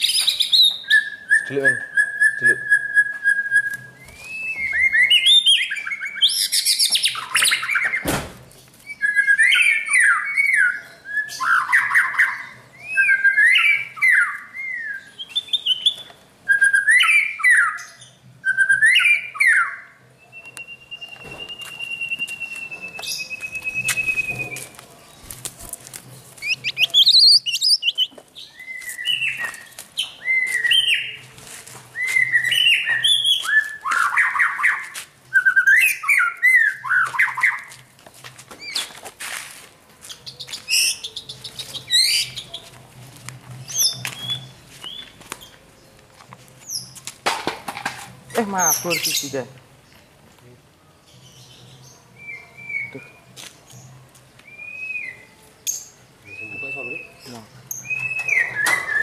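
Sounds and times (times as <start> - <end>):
bird singing whistled phrases: 0.0 - 8.1, 8.8 - 24.7, 26.4 - 31.2, 32.0 - 37.7, 54.4 - 59.0
sharp thump: 8.0 - 8.5.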